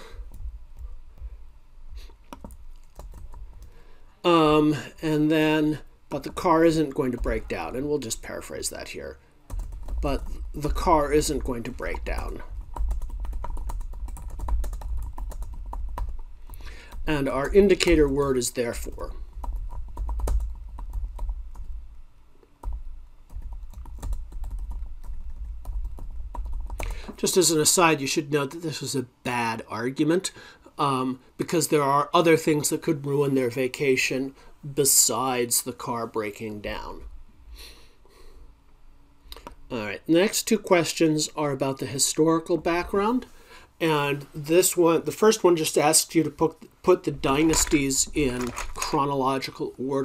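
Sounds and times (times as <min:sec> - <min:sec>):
keyboard and mouse clicks: 0:02.2 - 0:03.7, 0:47.4 - 0:49.0.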